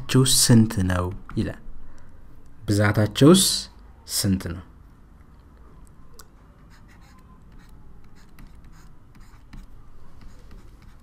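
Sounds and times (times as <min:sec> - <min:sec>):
stylus scratching on tablet: 0:06.5 - 0:11.0.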